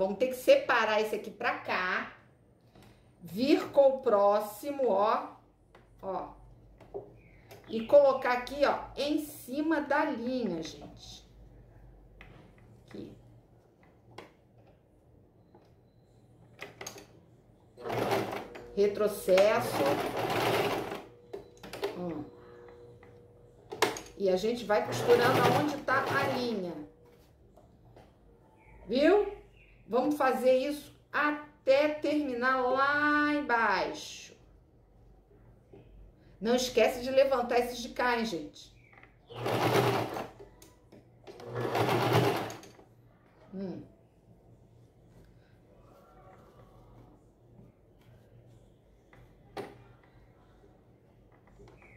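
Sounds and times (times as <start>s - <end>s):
sewing machine stitching: 17.8s - 22.1s, 23.7s - 26.7s, 39.3s - 40.4s, 41.3s - 42.8s.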